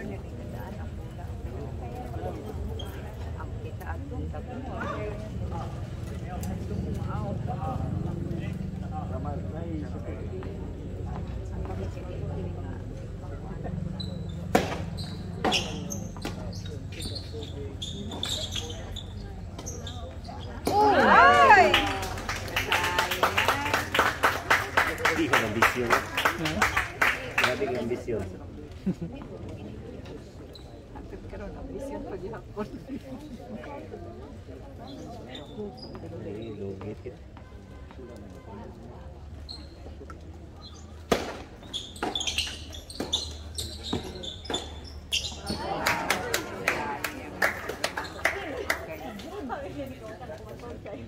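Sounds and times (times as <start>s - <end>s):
indistinct chatter: 0.0s - 51.0s
tennis ball struck with rackets: 14.4s - 16.4s, 41.0s - 44.7s
crowd cheering shouts: 20.7s - 23.7s
crowd clapping: 21.0s - 28.1s, 45.6s - 49.2s.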